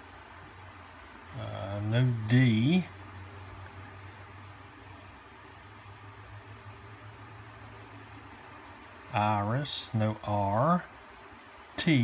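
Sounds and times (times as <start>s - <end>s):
low hum: 0.0s - 12.0s
room noise hiss: 0.0s - 12.0s.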